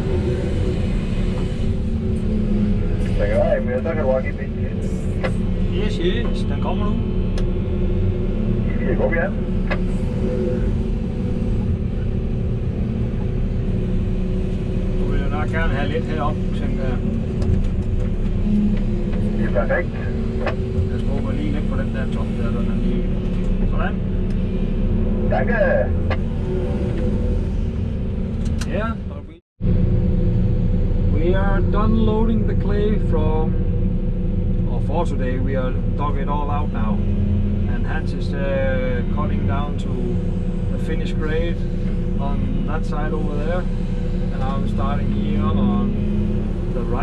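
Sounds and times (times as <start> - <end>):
excavator diesel engine running: 0.0 - 47.0.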